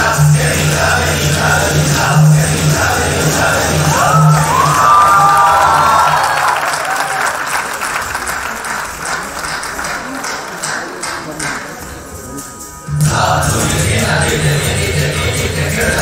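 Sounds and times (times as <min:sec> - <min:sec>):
audience applause: 0:03.7 - 0:12.1.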